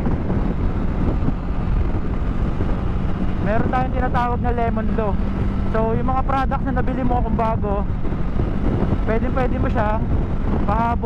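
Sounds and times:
motorcycle engine cruising: 0.0 - 11.0
wind rush on microphone: 0.0 - 11.0.

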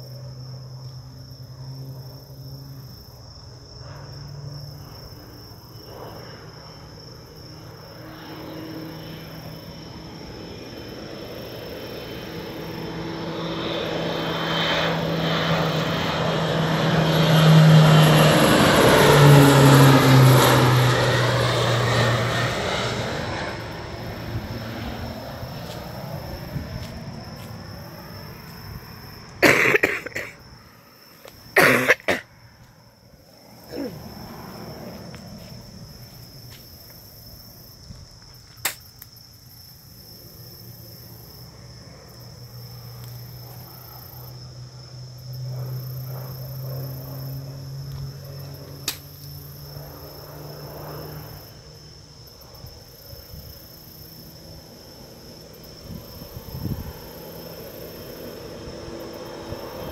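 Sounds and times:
low-flying plane passing overhead: 0.0 - 59.9.

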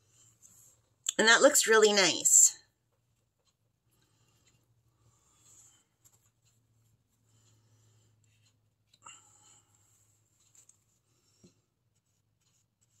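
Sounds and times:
faint rustles of art materials: 0.0 - 1.0, 2.7 - 13.0.

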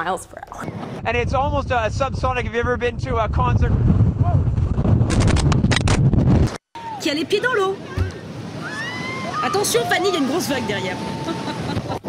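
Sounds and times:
blizzard wind buffeting microphone: 0.6 - 6.6.

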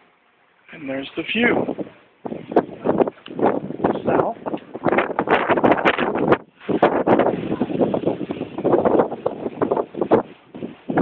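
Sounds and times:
wind buffeting microphone: 1.2 - 11.0.

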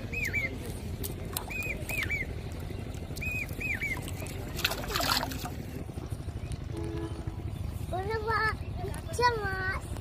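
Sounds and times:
high chirping bird calls: 0.0 - 0.7, 1.4 - 4.9
pole splashing through water: 3.2 - 5.8.

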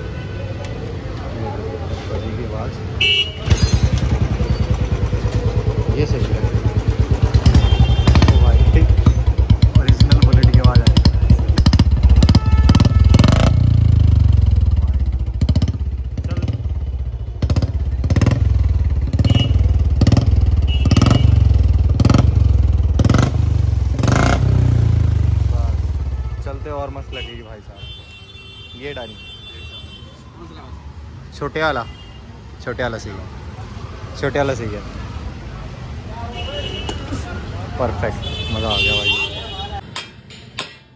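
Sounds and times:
motorcycle engine throttle blips: 3.0 - 26.4.

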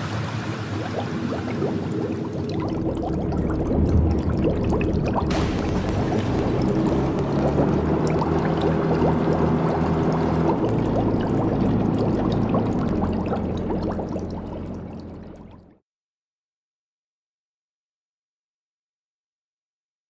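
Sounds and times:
low mechanical drone: 0.0 - 15.8
water bubbling and gurgling: 0.0 - 15.8.

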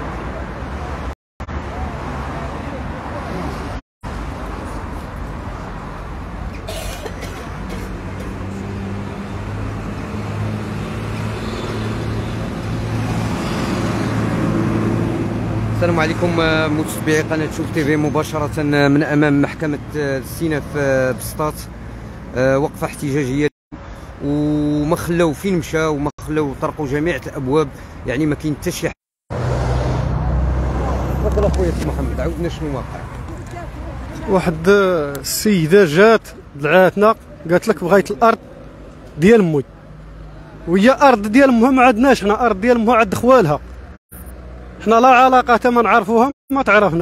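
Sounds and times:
road traffic: 0.0 - 47.0.

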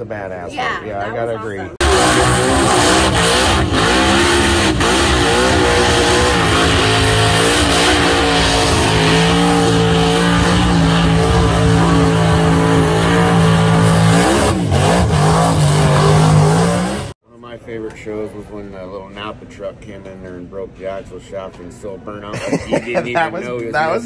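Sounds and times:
car engine at high revs: 1.8 - 17.2.

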